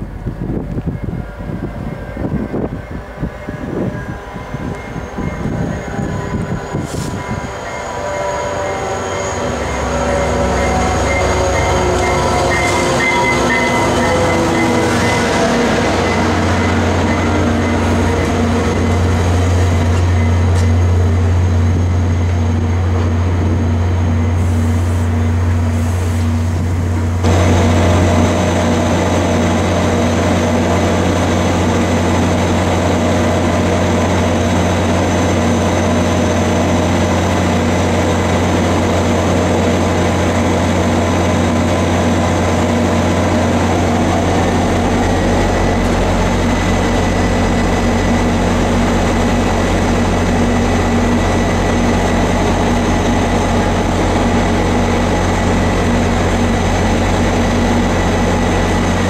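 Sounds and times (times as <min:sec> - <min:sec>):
high steady tone: 0:00.0 - 0:30.4
diesel locomotive engine drone: 0:00.0 - 0:59.0.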